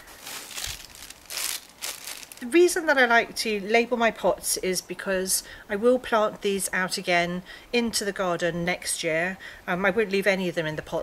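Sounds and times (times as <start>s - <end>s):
dry moss rustling: 0.0s - 2.8s.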